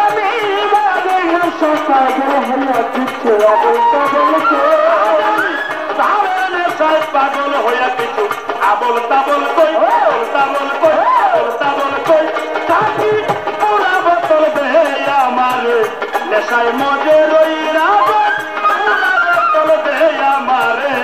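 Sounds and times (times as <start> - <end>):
steady drum beat: 0.0 - 21.0
wavering folk melody: 0.0 - 21.0.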